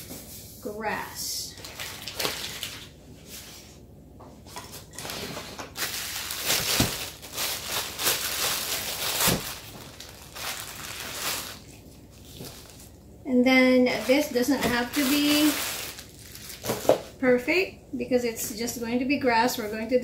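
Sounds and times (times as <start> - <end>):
plastic bag crinkling: 1.5 - 3.0, 4.8 - 13.0, 13.9 - 17.2.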